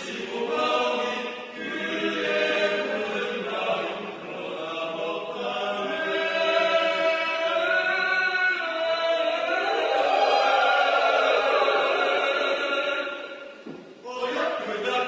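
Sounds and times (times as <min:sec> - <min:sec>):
mixed choir singing in harmony: 0:00.0 - 0:15.0.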